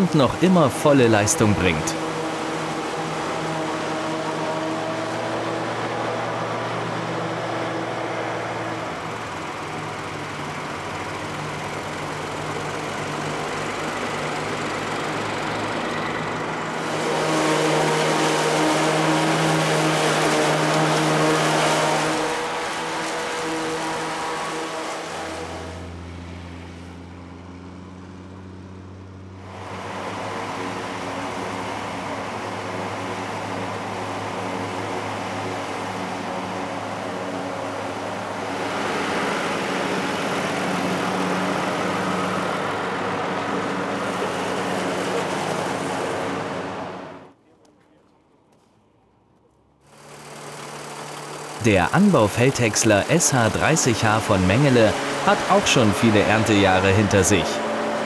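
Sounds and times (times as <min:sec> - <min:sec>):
tractor diesel engines under load: 0:00.0 - 0:47.3, 0:48.6 - 0:58.0.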